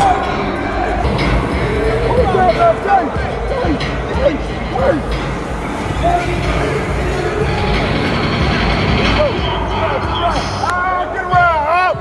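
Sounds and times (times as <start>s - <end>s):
players and coaches shouting: 0.0s - 12.0s
steady low rumble: 0.6s - 10.4s.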